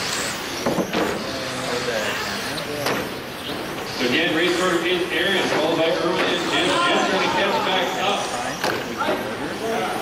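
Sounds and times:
toy car motors whining: 0:00.0 - 0:10.0.

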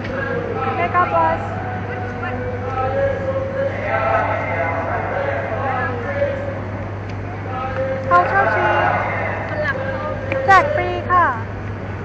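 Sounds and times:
people talking: 0:00.0 - 0:11.5
low hum of city traffic: 0:00.0 - 0:12.0.

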